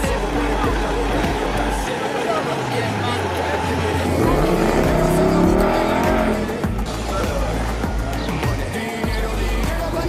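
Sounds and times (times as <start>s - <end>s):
car engine revving: 0.0s - 7.9s
background song: 0.0s - 10.0s
car driving past: 2.4s - 6.8s.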